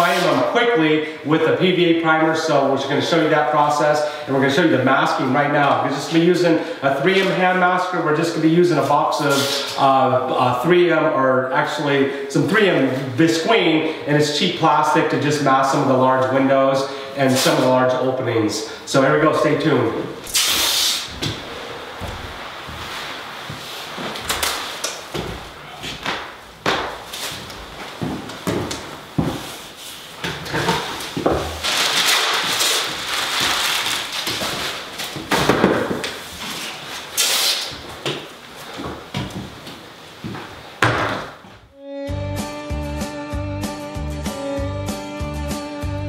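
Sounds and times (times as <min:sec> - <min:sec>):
tape crinkling and rasping: 0:31.6 - 0:35.3
guitar music: 0:41.8 - 0:46.0.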